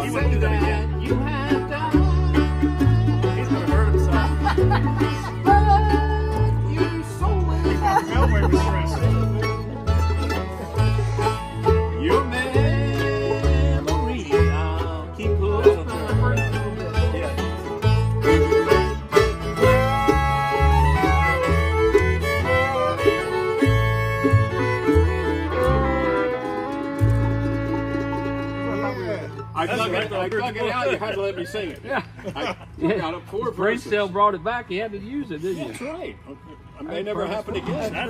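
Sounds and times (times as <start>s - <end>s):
upright bass steady beat: 0.0s - 30.6s
acoustic guitar: 0.0s - 31.8s
fiddles playing melody: 0.0s - 31.8s
banjo: 0.0s - 34.2s.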